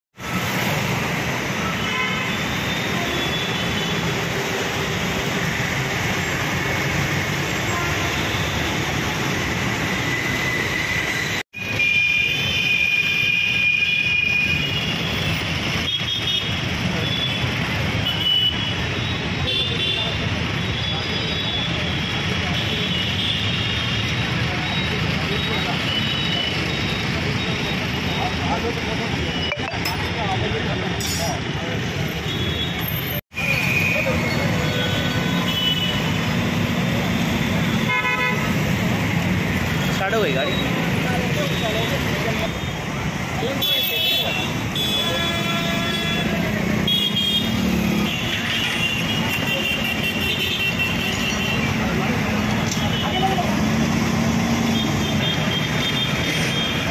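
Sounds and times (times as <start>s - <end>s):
busy road traffic: 0.1s - 56.9s.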